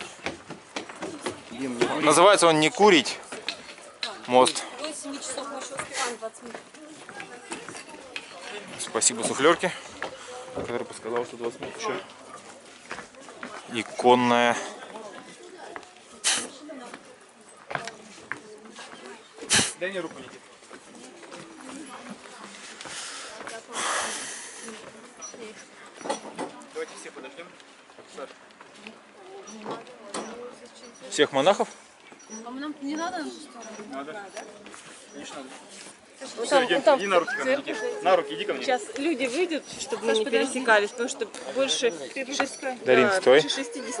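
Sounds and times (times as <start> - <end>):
people talking indistinctly: 0.0 - 44.0
short hiss of noise: 16.2 - 16.6, 19.5 - 19.8.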